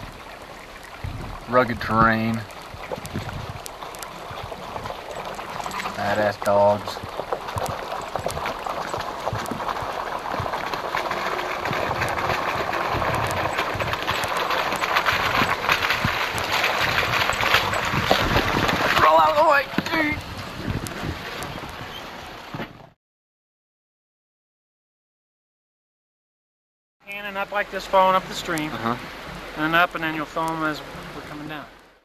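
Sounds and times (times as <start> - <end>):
tyres crunching on stones: 2.0 - 20.1.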